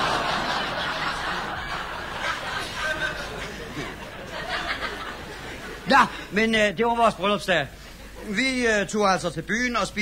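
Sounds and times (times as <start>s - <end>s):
studio audience laughing: 0.0s - 5.9s.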